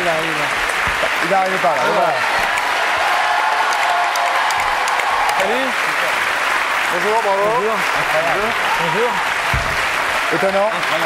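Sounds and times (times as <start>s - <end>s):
studio audience applauding: 0.0s - 11.0s.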